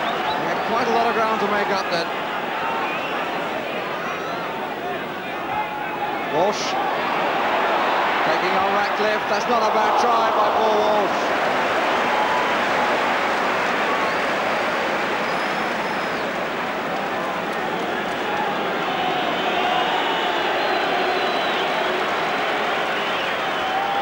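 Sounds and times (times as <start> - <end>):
crowd chanting: 6.0 - 24.0.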